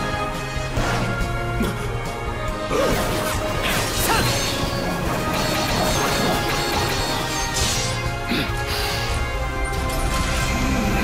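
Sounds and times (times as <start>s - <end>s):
dramatic background music: 0.0s - 11.0s.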